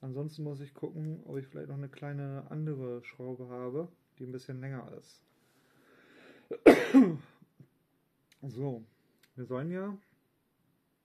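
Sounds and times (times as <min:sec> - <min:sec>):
man breathing in: 0:05.3 - 0:06.5
man coughing harshly: 0:06.5 - 0:07.4.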